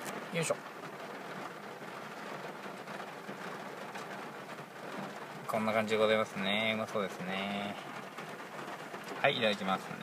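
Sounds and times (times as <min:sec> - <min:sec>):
heavy rain hissing: 0:00.0 - 0:10.0.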